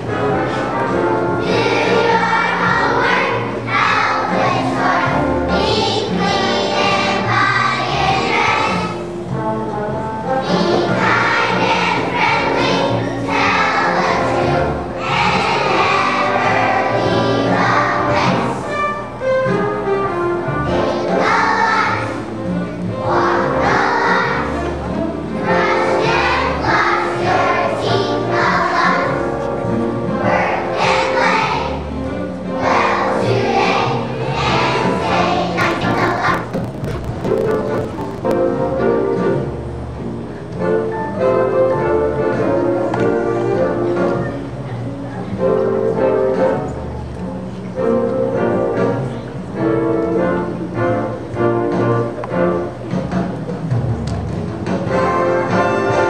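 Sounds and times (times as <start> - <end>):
children's choir singing: 0.0 - 9.4, 10.2 - 19.5, 20.1 - 39.6
musical accompaniment: 0.0 - 56.0.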